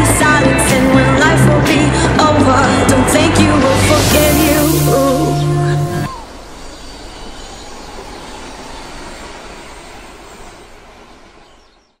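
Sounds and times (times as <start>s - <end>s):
steady rushing noise: 0.0s - 11.7s.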